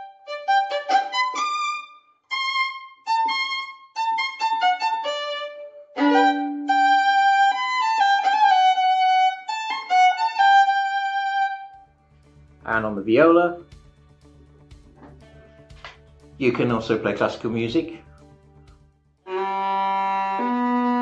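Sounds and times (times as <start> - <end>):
solo violin melody: 0.0 - 11.8, 19.2 - 21.0.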